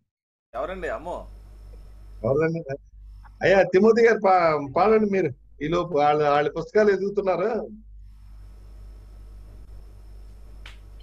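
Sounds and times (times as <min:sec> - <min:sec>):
steady low hum: 0:00.6 - 0:11.0.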